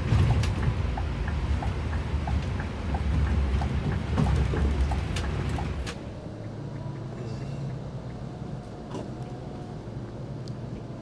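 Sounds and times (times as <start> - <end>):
bus road rumble inside cabin: 0.0 - 11.0
light ticks: 0.4 - 10.9.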